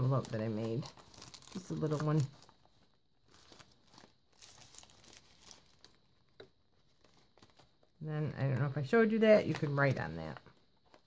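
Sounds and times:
paper rustling and crinkling: 0.0 - 8.7, 9.3 - 11.0.

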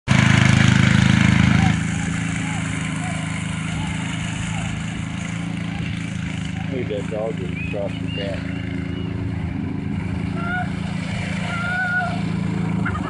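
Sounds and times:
go-kart engine running: 0.0 - 13.0.

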